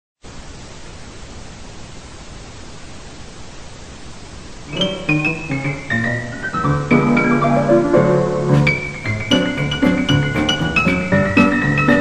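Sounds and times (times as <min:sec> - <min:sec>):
television static hiss: 0:00.2 - 0:12.0.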